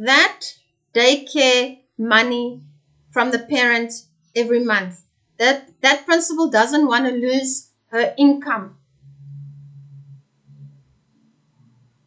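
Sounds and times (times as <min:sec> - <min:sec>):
woman humming: 0:09.0 - 0:10.8.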